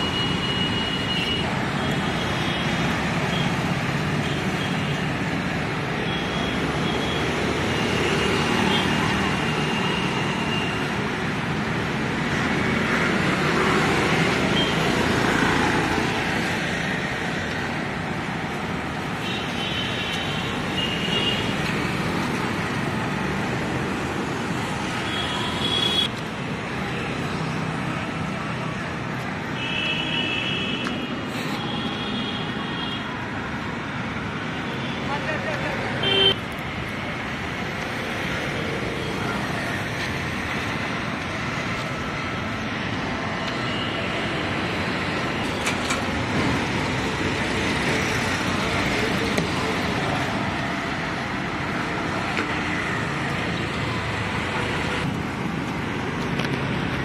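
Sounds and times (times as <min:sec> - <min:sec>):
road traffic noise: 0:00.0 - 0:57.0.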